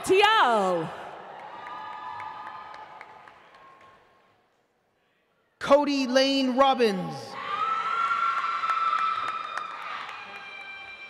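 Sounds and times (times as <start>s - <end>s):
audience cheering: 0.8s - 3.8s, 7.4s - 11.0s.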